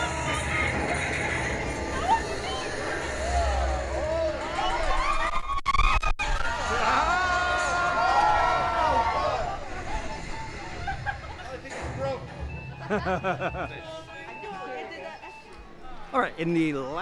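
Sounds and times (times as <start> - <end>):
riders screaming and shouting: 2.0 - 10.0.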